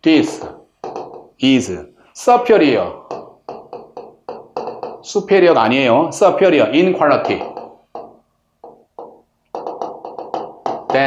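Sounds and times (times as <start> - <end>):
pen tapping on touchscreen: 0.4 - 1.4, 3.0 - 5.1, 7.2 - 11.0.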